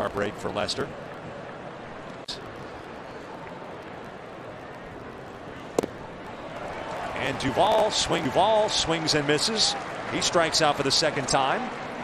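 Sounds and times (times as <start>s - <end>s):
ball smacking into mitt: 5.7s - 6.0s.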